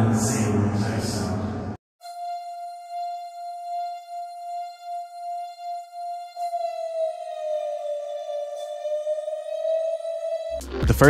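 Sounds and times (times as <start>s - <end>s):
breathy synth lead melody: 2.0s - 11.0s.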